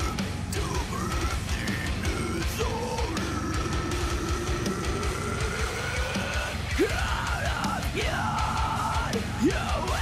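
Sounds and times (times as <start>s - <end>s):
fast dense drumming: 0.0s - 10.0s
heavy metal music: 0.0s - 10.0s.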